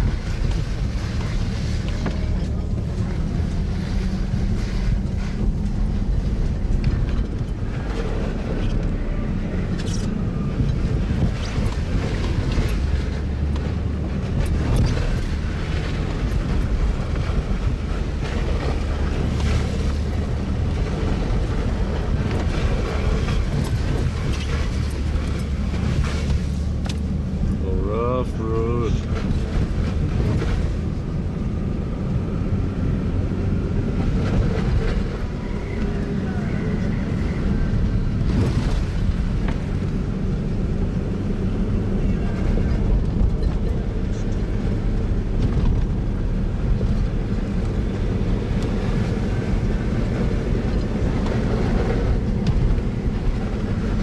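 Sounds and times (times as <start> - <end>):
engine and road rumble: 0.0 - 54.0.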